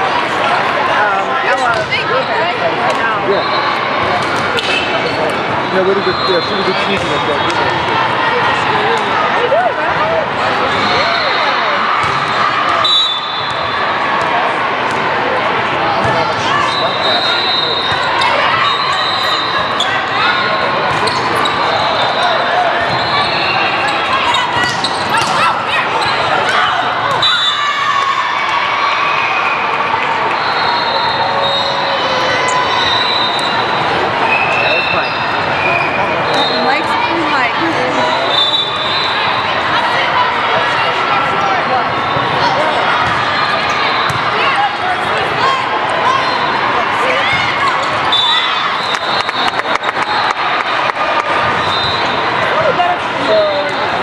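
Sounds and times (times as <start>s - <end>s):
voices echoing in a gym: 0.0s - 54.0s
volleyball impacts: 7.0s - 7.6s, 12.0s - 12.4s.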